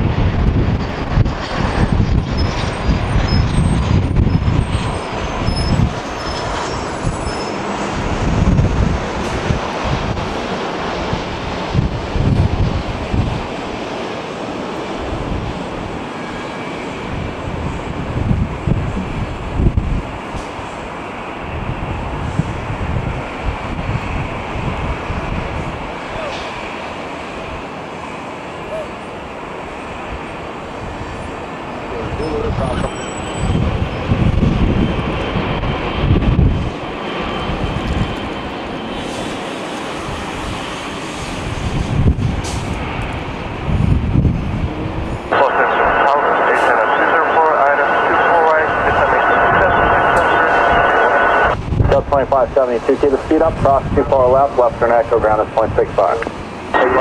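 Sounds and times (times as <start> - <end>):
wind buffeting microphone: 0.0 - 28.2, 29.1 - 46.0, 48.5 - 57.0
jet engine noise: 0.0 - 57.0
loud hissing with whine: 45.2 - 52.0.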